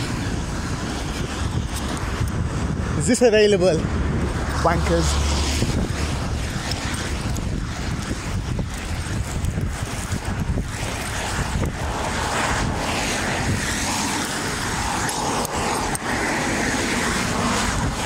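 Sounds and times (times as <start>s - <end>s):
road traffic noise: 0.0s - 18.0s
wind buffeting microphone: 0.0s - 18.0s.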